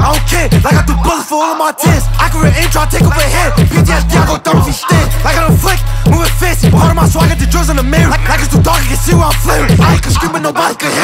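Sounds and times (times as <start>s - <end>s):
rapping over heavy bass: 0.0s - 11.0s.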